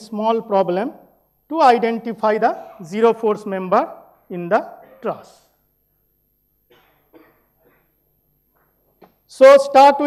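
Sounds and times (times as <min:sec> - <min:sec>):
faint cough: 0:02.4 - 0:03.0, 0:04.8 - 0:05.2, 0:06.7 - 0:08.0.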